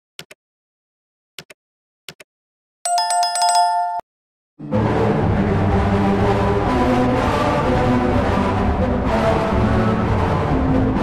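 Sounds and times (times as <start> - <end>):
notification bell ringing: 2.9 - 4.1.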